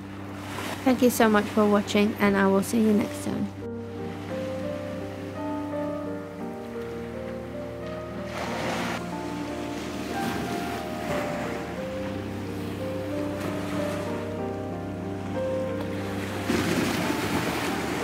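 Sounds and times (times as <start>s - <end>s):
soft background music: 0.0s - 18.0s
waves washing against sea wall: 8.3s - 14.4s, 15.8s - 18.0s.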